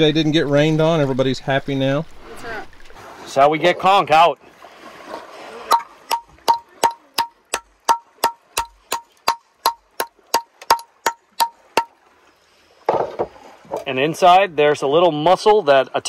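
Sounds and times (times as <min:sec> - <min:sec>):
hammer tapping on shell: 0:05.7 - 0:11.9.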